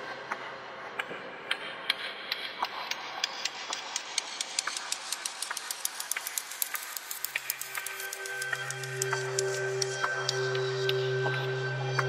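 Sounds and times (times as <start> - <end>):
crackle of clicks and ticks: 0.0 - 12.0.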